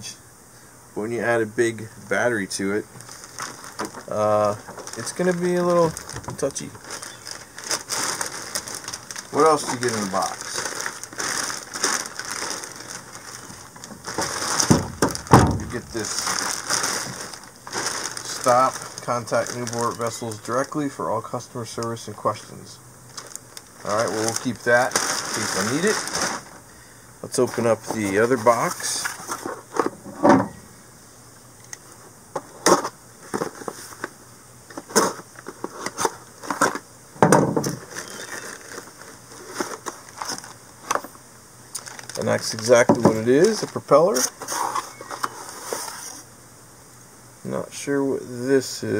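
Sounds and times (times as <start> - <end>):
plastic bag rustling: 2.4 - 30.1, 34.7 - 46.3.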